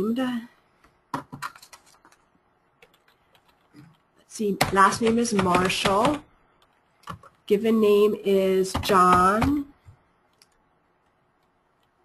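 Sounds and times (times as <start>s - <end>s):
faint keyboard keystrokes: 0.8s - 4.1s.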